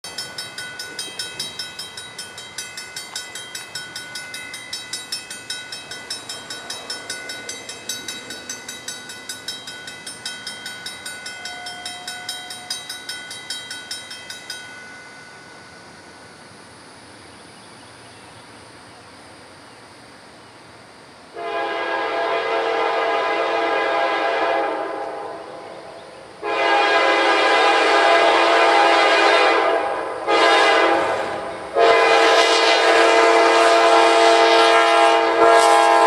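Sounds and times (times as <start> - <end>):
crossing warning bell ringing: 0.0 - 19.6.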